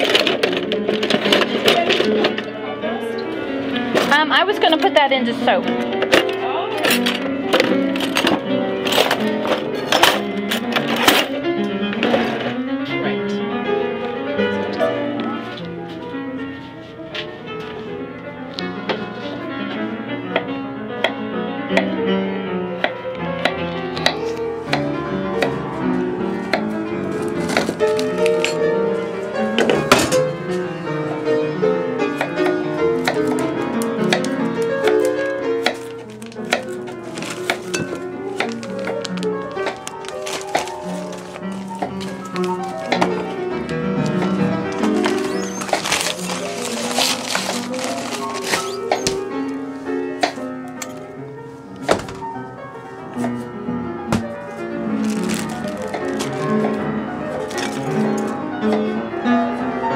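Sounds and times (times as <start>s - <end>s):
classical piano music: 0.0s - 59.9s.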